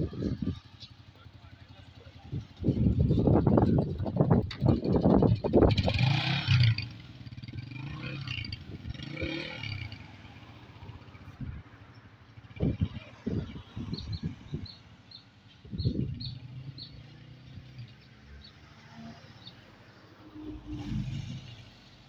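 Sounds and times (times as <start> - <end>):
small motorcycle engine pulling away: 5.6 - 11.2
bird chirps: 13.4 - 18.6.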